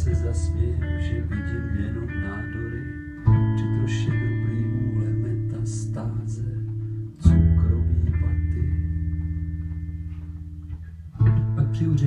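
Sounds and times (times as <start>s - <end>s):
bass guitar note ringing: 0.0s - 12.0s.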